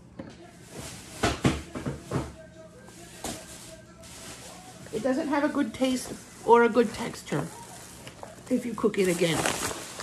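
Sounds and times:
packaging knocks and rustles: 7.0s - 10.0s.

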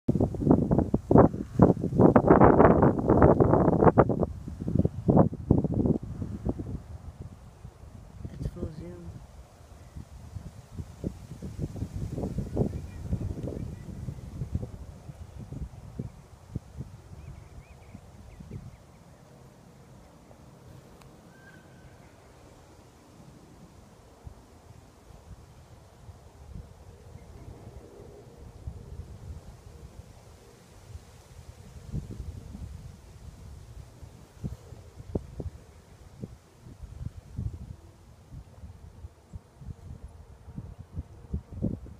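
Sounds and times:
wind buffeting microphone: 0.1s - 19.1s, 19.9s - 41.9s.

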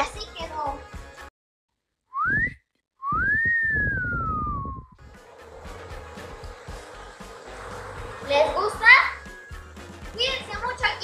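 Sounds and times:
wolf whistle: 2.2s - 5.0s, 9.0s - 9.8s.

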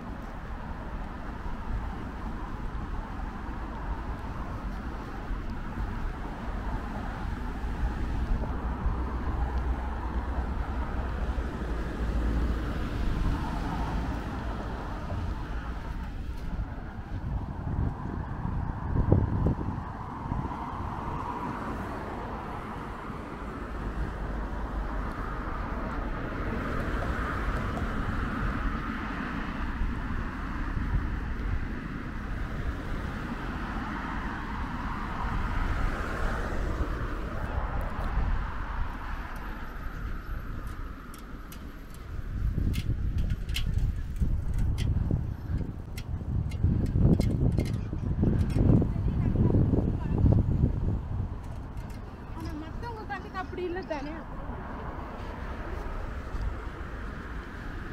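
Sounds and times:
cars passing on a bridge: 0.0s - 57.9s.

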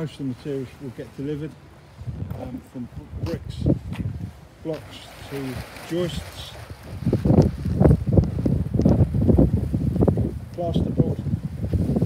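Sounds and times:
wind buffeting microphone: 1.8s - 12.0s.

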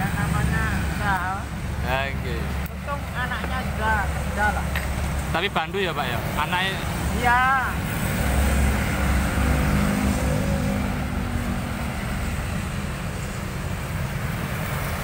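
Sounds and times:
low rumble of road traffic: 0.0s - 15.0s
vehicle engine passing by: 3.6s - 15.0s.

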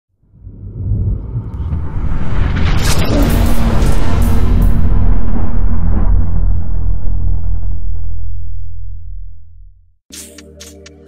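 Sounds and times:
deep low rumble: 0.2s - 10.1s.

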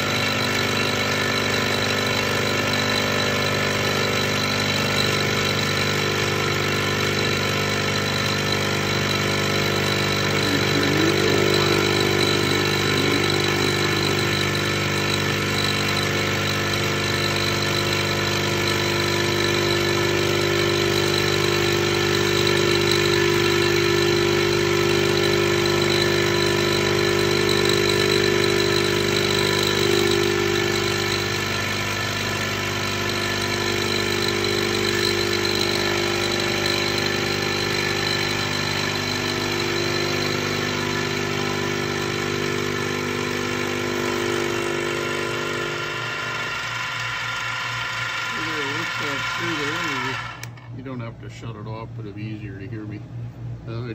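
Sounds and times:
end mill cutting steel: 0.0s - 50.8s
milling machine hum: 0.0s - 53.9s.

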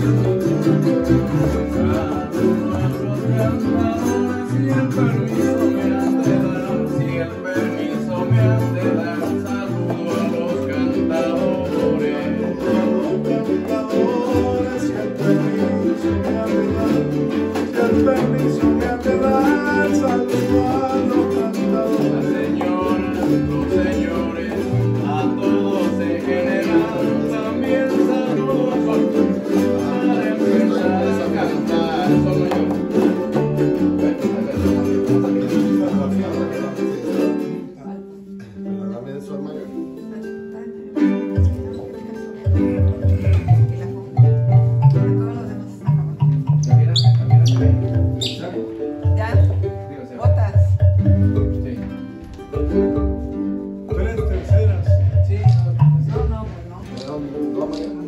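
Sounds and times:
people singing: 0.0s - 37.8s
strummed string instruments: 0.0s - 58.0s.

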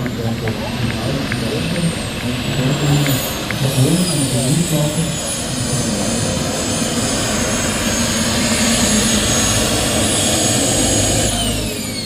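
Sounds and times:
jet turbine roaring and whining: 0.0s - 12.0s.

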